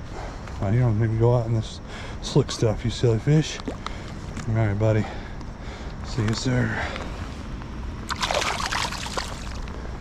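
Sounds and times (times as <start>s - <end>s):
brief water splash: 8.1s - 9.6s.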